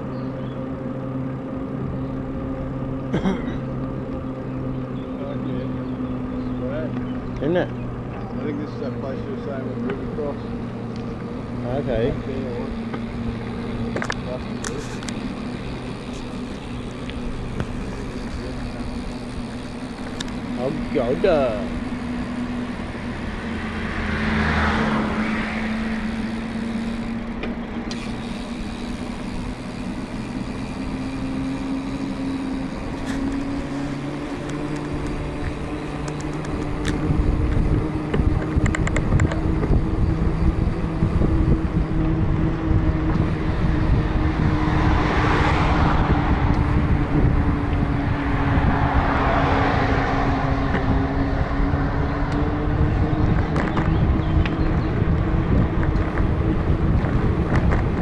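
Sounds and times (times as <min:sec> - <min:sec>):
bicycle tyres humming on tarmac: 0:00.0 - 0:58.0
cars rushing past: 0:03.4 - 0:58.0
wind buffeting microphone: 0:10.2 - 0:58.0.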